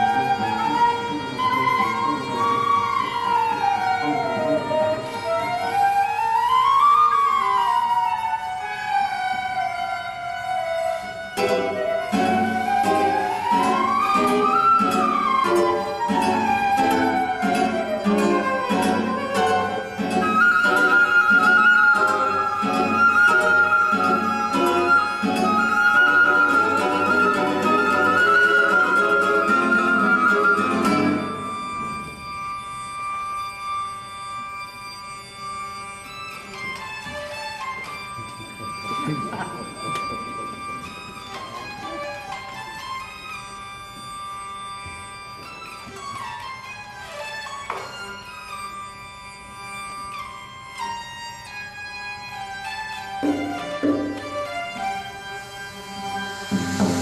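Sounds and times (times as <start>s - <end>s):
held high flute note: 0.0s - 33.7s, 53.2s - 57.0s
flute pitch glides: 0.0s - 51.3s, 51.9s - 57.0s
plucked guitar notes: 11.1s - 33.9s, 36.3s - 48.2s, 52.6s - 57.0s.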